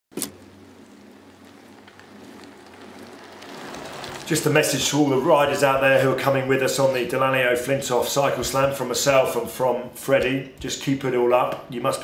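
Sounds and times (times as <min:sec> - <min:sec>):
low hum: 0:00.2 - 0:05.8
steady hiss with crackles: 0:00.2 - 0:12.0.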